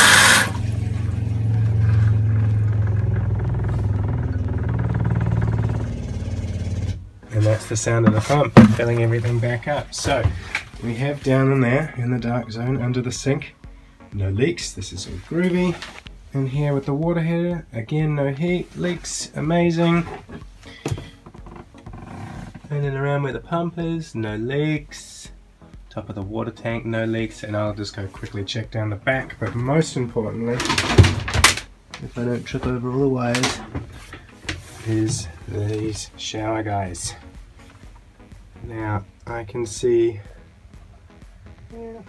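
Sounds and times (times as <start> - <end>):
water pump humming and pulsing: 0.0 - 7.0.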